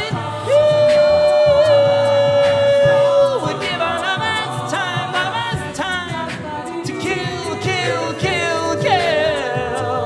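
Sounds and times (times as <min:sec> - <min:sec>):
a cappella ensemble singing: 0:00.0 - 0:10.0.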